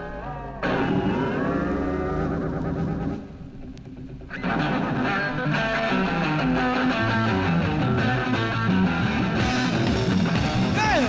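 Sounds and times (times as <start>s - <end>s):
electric guitar long bending note: 0.0s - 3.6s.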